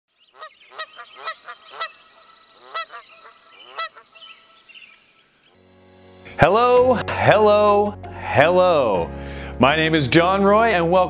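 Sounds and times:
bird honking: 0.2s - 5.4s.

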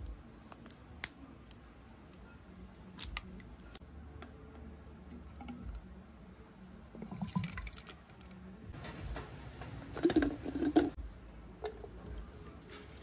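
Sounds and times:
liquid pouring into bottle: 7.0s - 7.9s.

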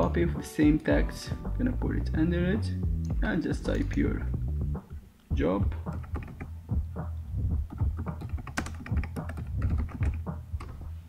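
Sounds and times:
keyboard typing clicks: 5.9s - 6.5s, 7.7s - 10.8s.

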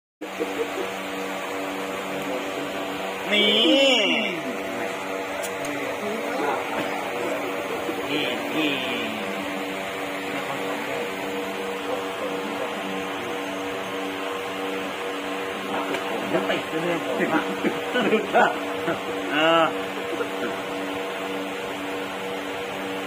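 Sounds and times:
hum of held tones: 0.2s - 23.0s
voice murmuring: 0.3s - 1.1s, 2.2s - 13.5s.

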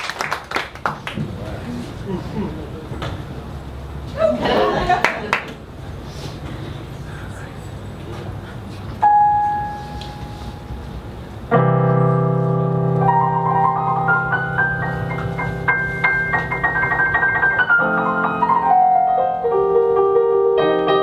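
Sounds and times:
digital piano notes and chord: 9.0s - 21.0s.

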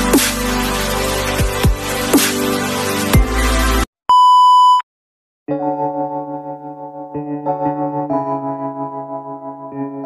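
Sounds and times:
electronic music with bass sweeps: 0.0s - 3.9s.

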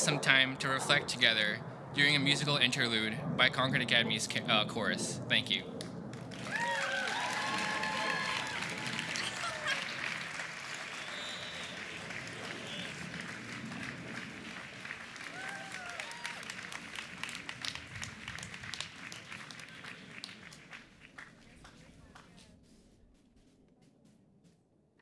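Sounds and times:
audience applauding: 6.1s - 22.3s.

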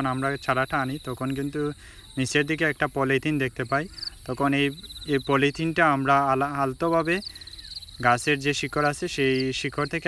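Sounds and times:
man talking: 0.0s - 7.3s, 8.0s - 10.0s
cricket trilling: 0.0s - 10.0s.

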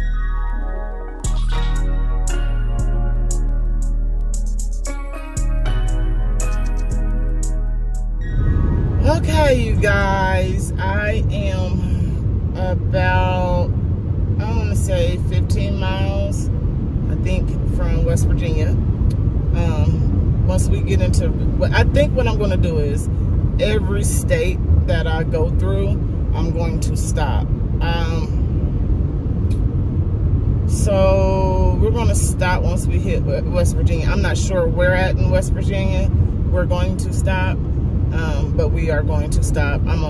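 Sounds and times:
car road and engine noise: 0.0s - 40.0s
woman talking: 9.0s - 13.7s, 14.4s - 16.5s, 17.1s - 18.8s, 19.5s - 28.4s, 30.7s - 40.0s.

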